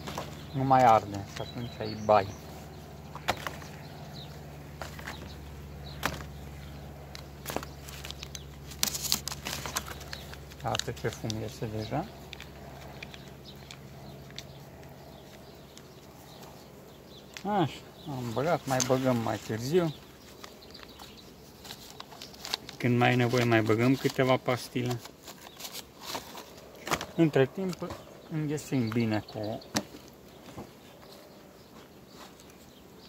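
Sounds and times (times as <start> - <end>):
steady low hum: 0.0 - 33.0
clicks and knocks of bee smoker: 3.1 - 3.8, 4.8 - 16.5, 17.2 - 17.6, 19.9 - 28.1, 29.7 - 30.8
crackling clicks: 12.2 - 16.4.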